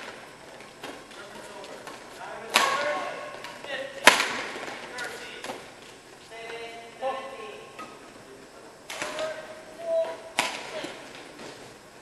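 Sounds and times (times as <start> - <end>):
voices: 0.9 - 11.8.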